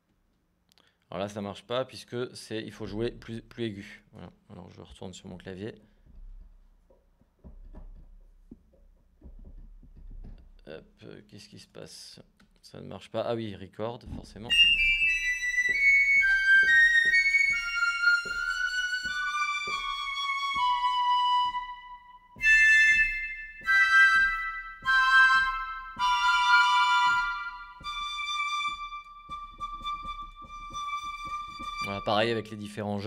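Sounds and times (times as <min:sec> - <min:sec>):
piccolo flute notes: 0:14.5 - 0:32.5.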